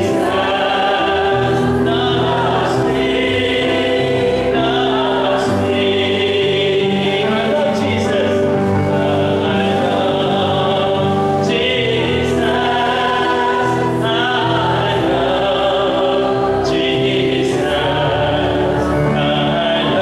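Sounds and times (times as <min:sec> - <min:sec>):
electronic keyboard chords: 0:00.0 - 0:20.0
man singing: 0:00.0 - 0:20.0.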